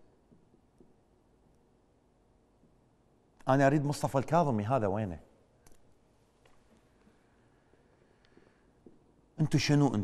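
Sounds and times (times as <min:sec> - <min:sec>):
man speaking: 0:09.4 - 0:10.0.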